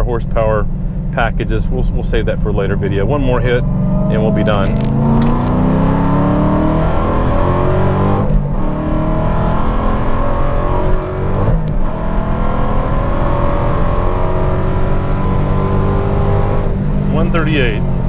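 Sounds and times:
car engine at full throttle: 0:00.0 - 0:18.0.

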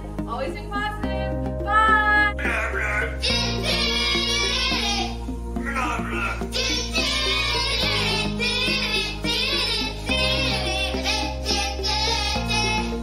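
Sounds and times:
musical backing: 0:00.0 - 0:13.0
children singing: 0:03.2 - 0:13.0.

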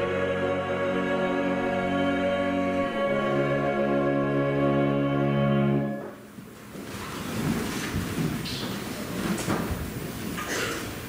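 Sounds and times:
rustling handling noise on microphone: 0:06.4 - 0:10.5.

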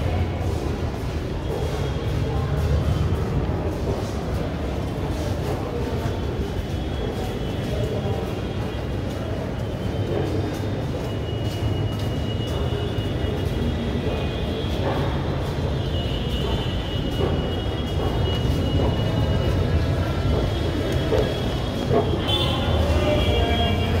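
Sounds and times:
metro station rumble: 0:00.0 - 0:24.0.

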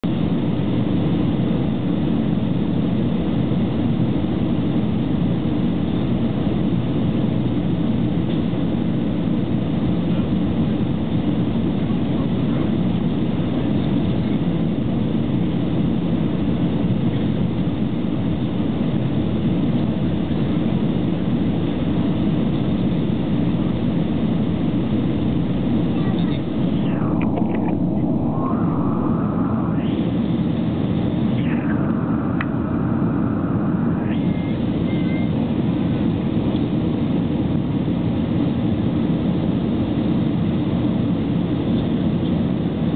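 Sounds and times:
airliner cabin rumble: 0:00.0 - 0:42.9.

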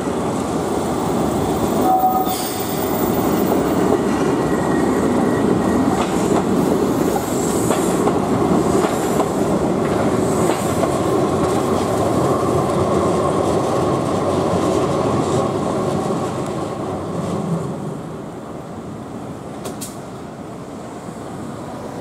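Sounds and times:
electric train rumbling past: 0:00.0 - 0:22.0.

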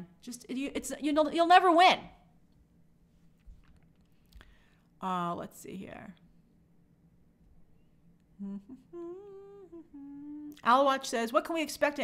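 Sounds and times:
woman humming: 0:08.4 - 0:10.7.

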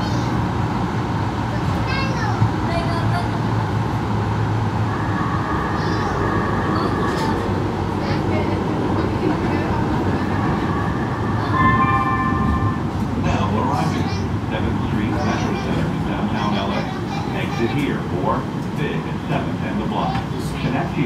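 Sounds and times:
train rumbling on track: 0:00.0 - 0:21.0
low hum: 0:03.9 - 0:13.7
thin high whine: 0:04.8 - 0:08.2.

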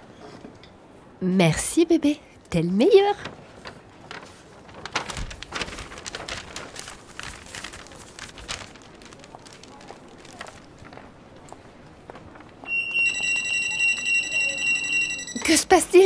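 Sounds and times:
paper bag rustling: 0:03.2 - 0:12.5
security gate alarm tone: 0:12.7 - 0:15.7.

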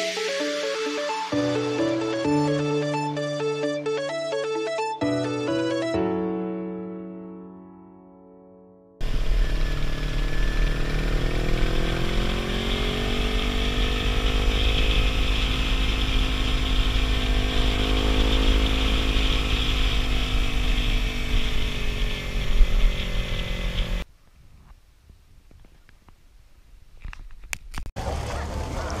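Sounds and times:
motorcycle engine running: 0:09.0 - 0:24.0.

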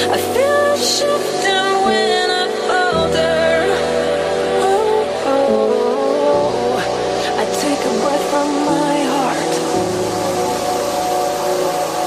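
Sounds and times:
synth pad chords: 0:00.0 - 0:12.0
white noise hiss: 0:00.0 - 0:12.0.

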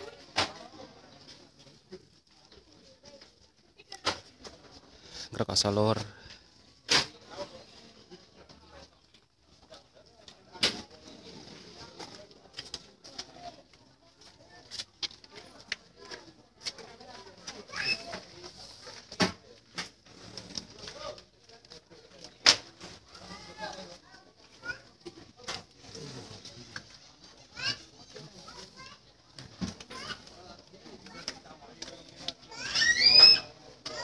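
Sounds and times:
low crowd chatter: 0:00.0 - 0:34.0.

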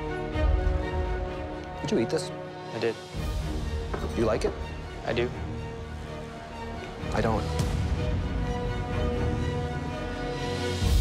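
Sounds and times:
background music score: 0:00.0 - 0:11.0.

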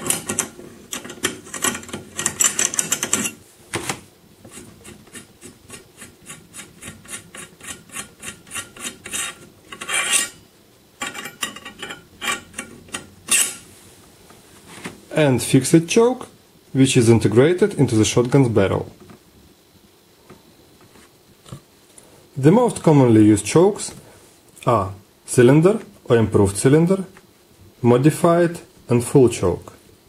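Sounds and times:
metal scraping and clicking: 0:00.0 - 0:03.4, 0:04.5 - 0:10.4, 0:11.0 - 0:13.6.

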